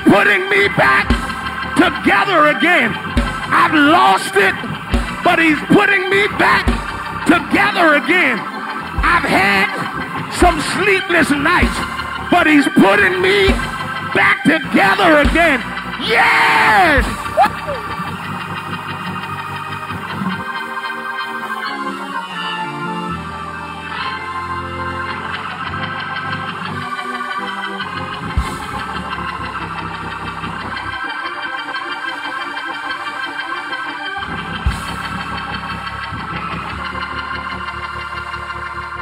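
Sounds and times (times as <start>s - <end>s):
organ chord throbbing: 0.0s - 39.0s.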